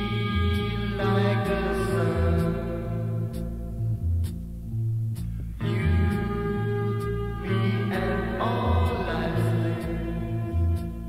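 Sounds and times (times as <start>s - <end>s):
bass line: 0.0s - 11.0s.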